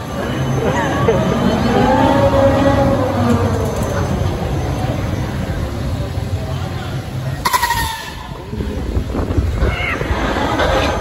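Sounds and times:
low rumble of ride: 0.0 - 11.0
thrill ride creaking: 0.0 - 11.0.

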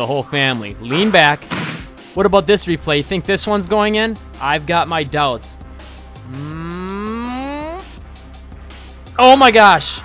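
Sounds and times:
man making rising ooh: 6.2 - 7.9.

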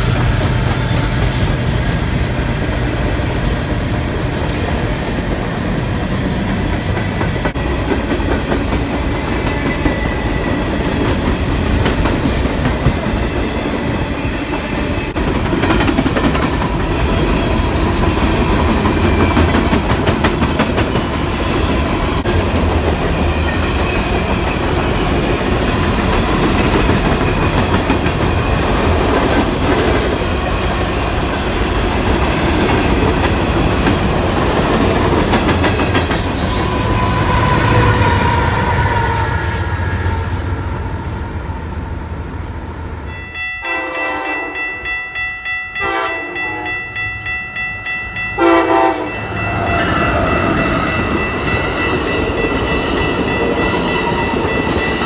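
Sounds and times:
freight train rumbling past: 0.0 - 55.0.

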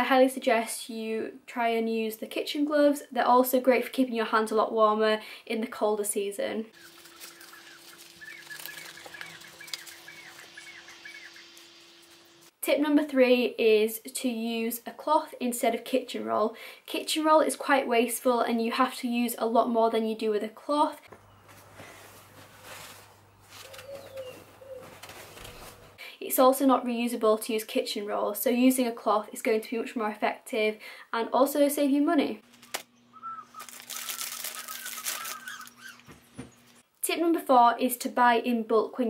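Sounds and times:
small bird chirping: 6.7 - 12.5, 23.6 - 25.6, 32.5 - 36.8
rubber gloves rustling and clicking: 6.8 - 10.9, 21.1 - 26.0, 32.4 - 32.9, 33.5 - 36.8
pigeon cooing: 23.6 - 25.0, 33.0 - 36.4.

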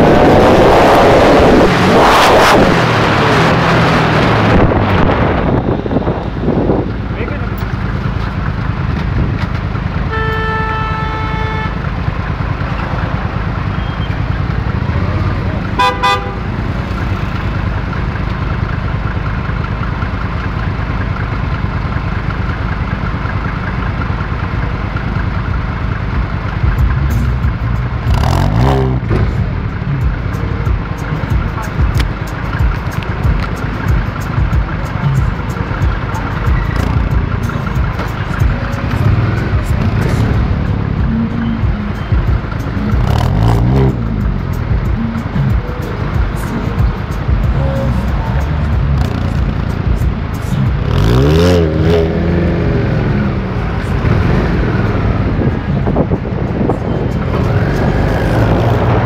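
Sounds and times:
engine revving: 0.0 - 9.4, 26.7 - 59.0
car exhaust rumble: 0.0 - 59.0
city traffic: 0.0 - 59.0
car horn: 9.9 - 12.1, 15.6 - 16.8.

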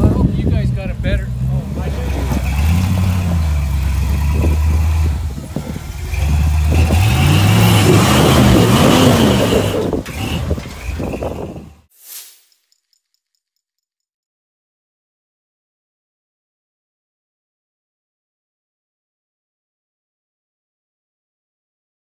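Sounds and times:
off-road vehicle engine revving: 0.0 - 11.9.

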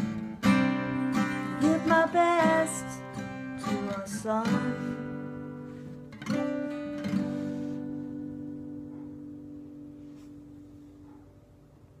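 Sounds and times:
strummed guitar chord ringing: 0.0 - 10.0.

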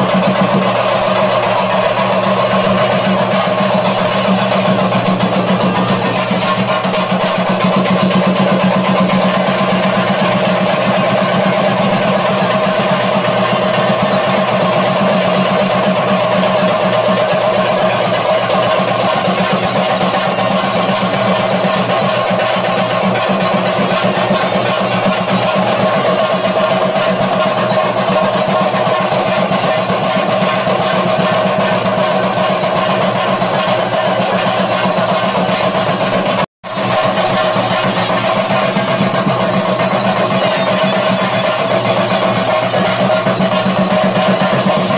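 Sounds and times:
drums in fast roll: 0.0 - 44.9.

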